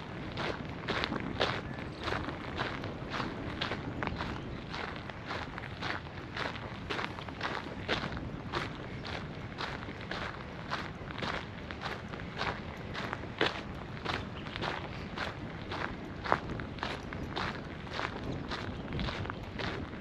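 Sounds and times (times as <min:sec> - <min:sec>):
footsteps on gravel: 0:00.0 - 0:20.0.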